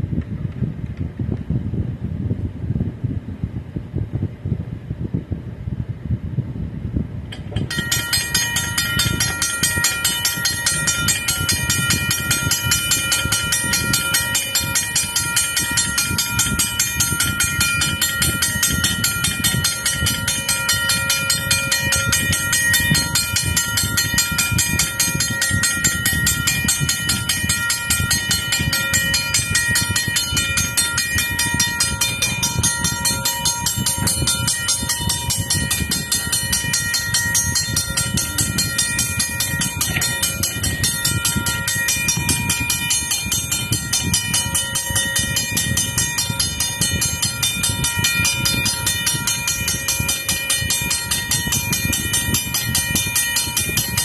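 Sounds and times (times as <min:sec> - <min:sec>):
railroad crossing bell ringing: 0:07.5 - 0:54.0.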